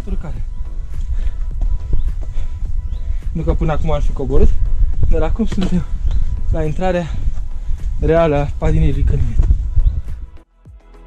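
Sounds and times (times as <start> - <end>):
boots and loose stones scraping: 0.0 - 10.3
wind rumble: 0.0 - 10.4
footsteps scrambling over rock: 0.7 - 10.0.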